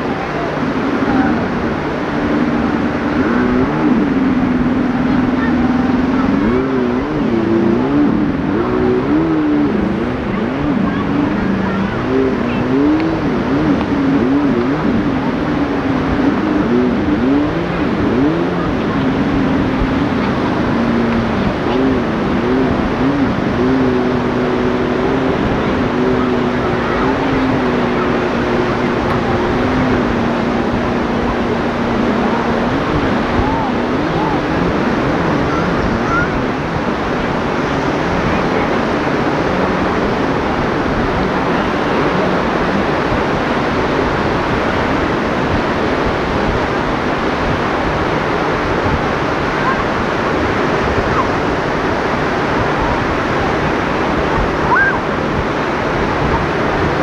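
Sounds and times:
sea surf roaring: 0.0 - 57.0
wind on microphone: 0.0 - 57.0.

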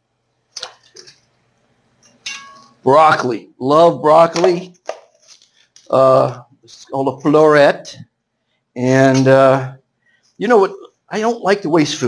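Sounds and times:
kitchenware clinking: 2.1 - 3.2.

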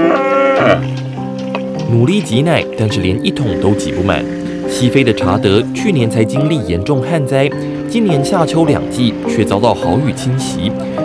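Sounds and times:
cow mooing: 0.0 - 1.0
background music with held notes: 0.0 - 11.0.

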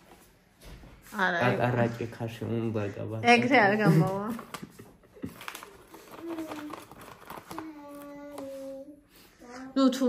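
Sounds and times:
foil bag crinkling: 4.3 - 8.7.

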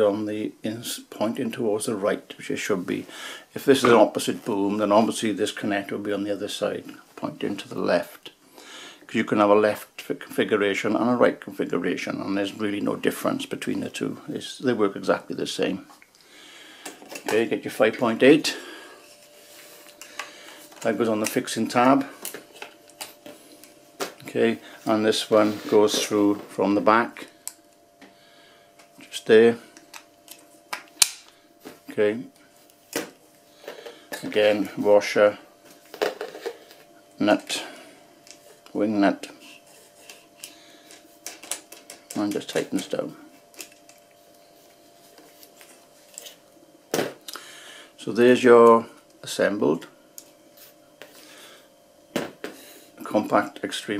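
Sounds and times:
quiet rubbing: 24.3 - 26.7.

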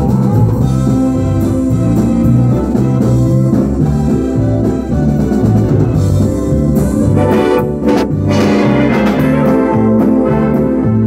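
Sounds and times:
bass line: 0.0 - 11.0
drums: 0.0 - 11.0
guitar: 0.0 - 11.0
keyboard organ: 1.0 - 11.0.

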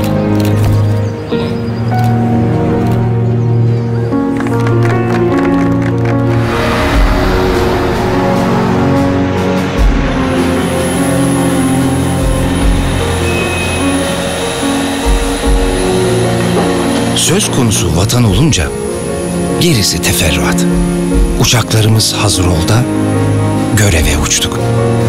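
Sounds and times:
film score music with held notes: 0.0 - 25.0
deep booms: 6.2 - 13.2.

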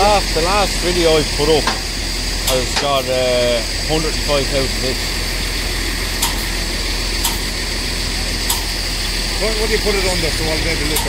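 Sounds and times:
diesel engine idling: 0.0 - 11.0.

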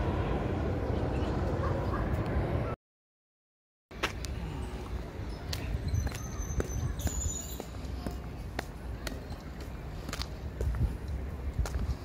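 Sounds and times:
footsteps walking: 5.5 - 12.0.

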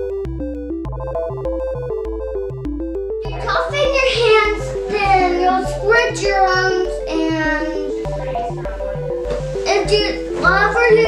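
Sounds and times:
background music with bass: 0.0 - 11.0
child speaking: 3.2 - 11.0.

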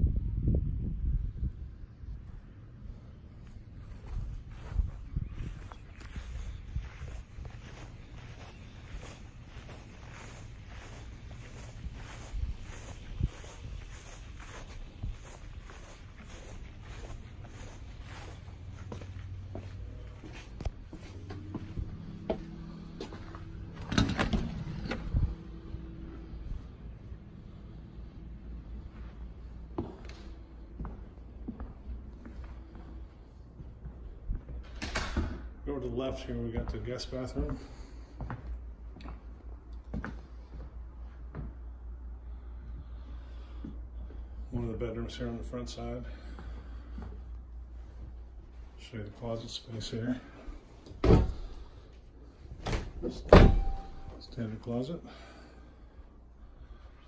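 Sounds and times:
door swinging open thud: 51.0 - 51.5, 52.6 - 54.0.

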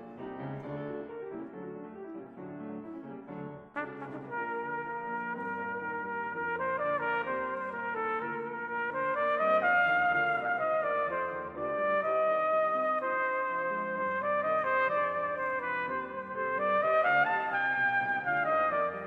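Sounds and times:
solo cornet melody: 0.0 - 19.0
brass band accompaniment: 3.8 - 19.0.

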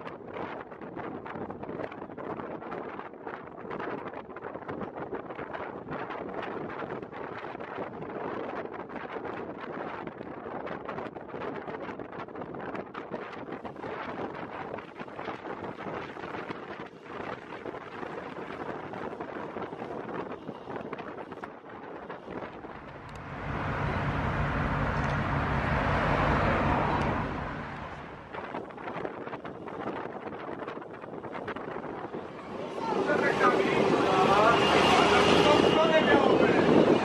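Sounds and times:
wind on microphone: 0.0 - 37.0
road noise: 13.6 - 37.0
bus diesel engine drone: 16.0 - 30.1, 30.8 - 37.0
voices talking: 32.4 - 37.0.

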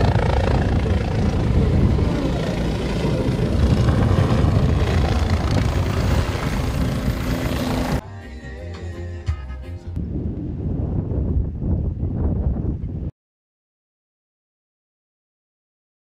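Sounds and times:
helicopter rotor and turbine: 0.0 - 8.0.

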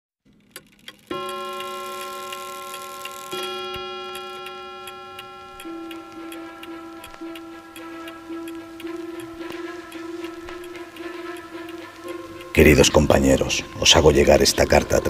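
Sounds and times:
clock ticking: 0.5 - 15.0
bell-like chime: 1.1 - 10.8
musical soundtrack: 1.1 - 15.0.

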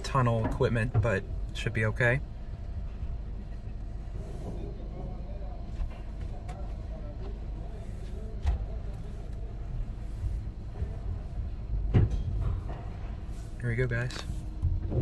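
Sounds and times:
car wash equipment rumbling: 0.0 - 15.0.

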